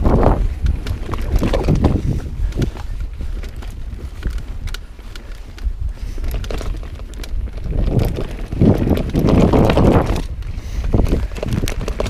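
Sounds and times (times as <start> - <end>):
bike rattling over bumps: 0.0 - 12.0
wind on microphone: 0.0 - 12.0.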